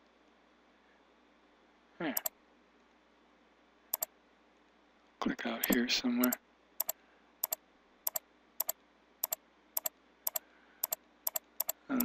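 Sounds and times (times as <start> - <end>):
computer mouse clicking: 3.9 - 4.1, 5.6 - 12.0.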